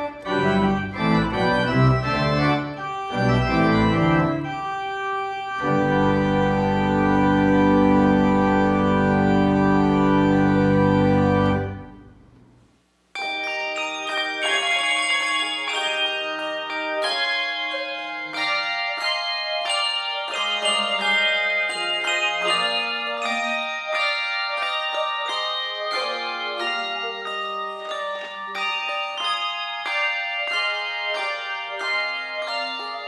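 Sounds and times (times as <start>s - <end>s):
pipe organ chord: 0.0s - 12.3s
handbells ringing: 13.2s - 33.0s.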